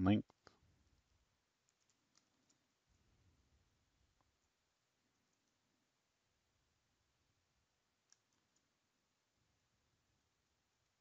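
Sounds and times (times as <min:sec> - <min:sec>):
faint keyboard clicks: 0:01.6 - 0:02.7, 0:08.0 - 0:08.8.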